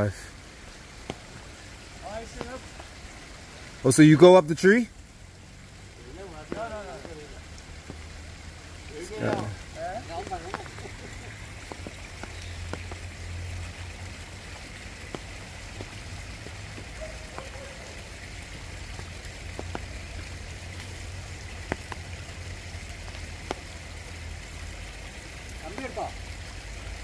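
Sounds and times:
light rain on foliage: 0.0s - 27.0s
water drips: 0.0s - 27.0s.

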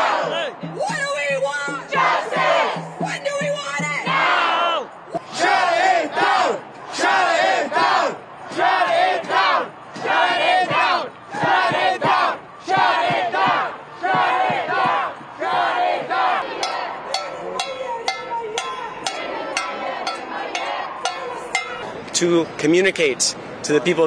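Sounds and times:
crowd chanting in unison: 0.0s - 0.8s, 1.6s - 22.0s.

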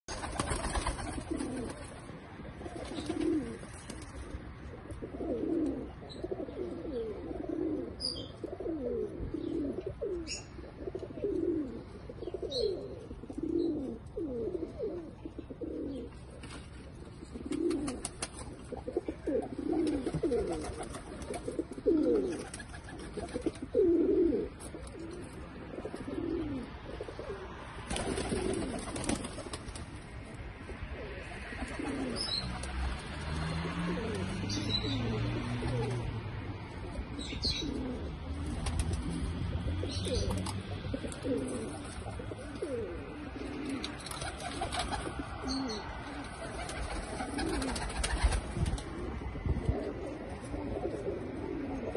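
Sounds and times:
pigeons cooing: 0.1s - 29.8s, 30.6s - 51.9s.

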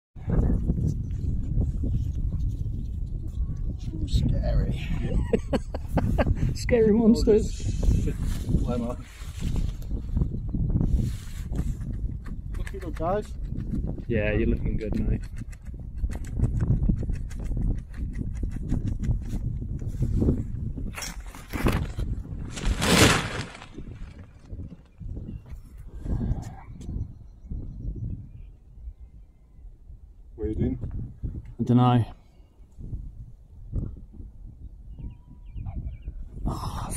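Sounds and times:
wind buffeting microphone: 0.2s - 36.9s
parachute fabric flapping: 21.0s - 25.0s.

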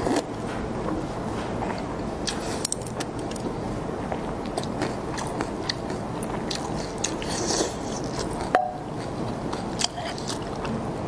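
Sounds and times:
close-up chewing: 4.4s - 10.8s.

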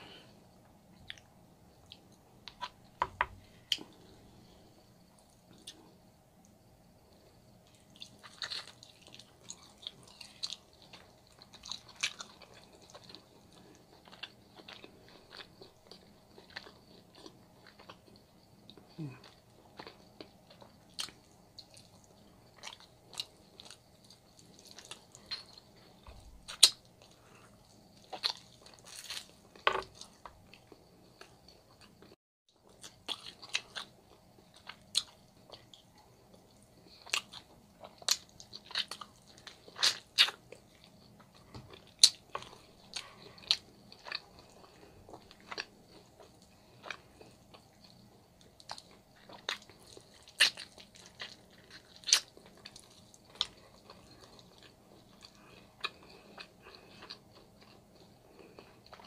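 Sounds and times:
faint steady hum: 0.0s - 59.0s
wet chewing and biting smacks: 37.0s - 57.8s.

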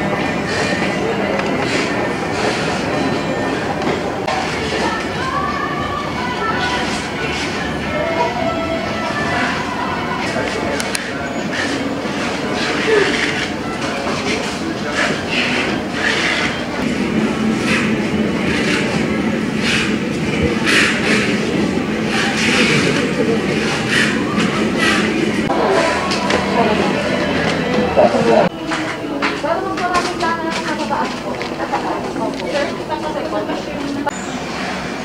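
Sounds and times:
air handling hum: 0.0s - 35.0s
murmur of voices: 0.0s - 35.0s.

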